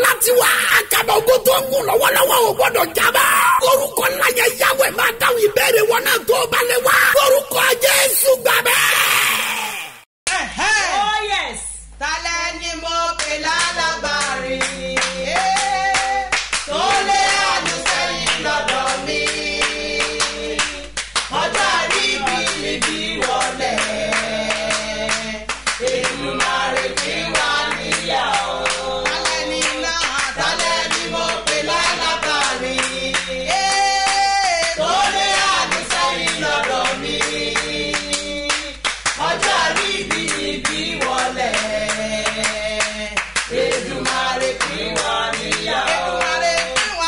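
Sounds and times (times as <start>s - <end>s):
people singing: 0.0s - 9.9s, 13.0s - 47.0s
rhythmic hand clapping: 13.2s - 47.0s.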